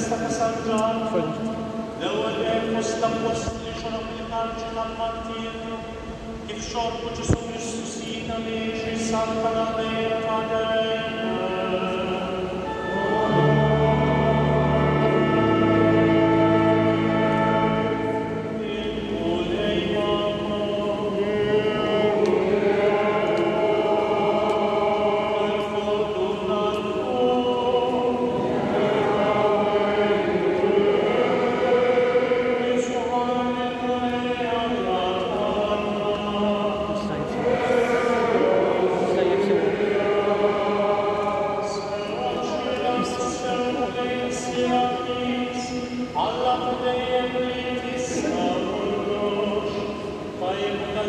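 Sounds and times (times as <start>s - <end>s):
choir singing a hymn: 0.0s - 51.0s.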